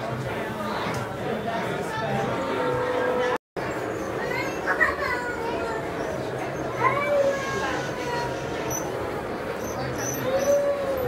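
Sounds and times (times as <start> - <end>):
background murmur of voices: 0.0 - 11.0
children exclaiming: 4.2 - 8.8, 10.1 - 11.0.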